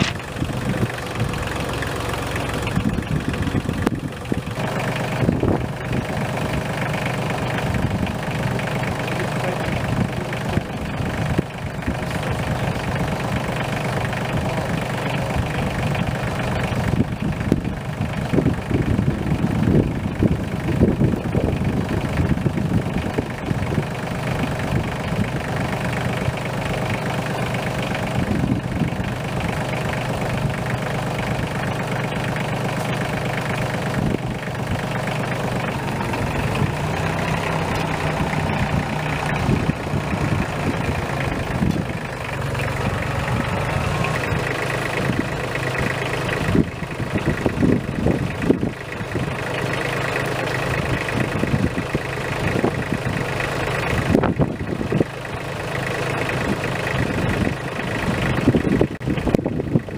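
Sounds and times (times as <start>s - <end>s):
engine idling: 0.0s - 59.9s.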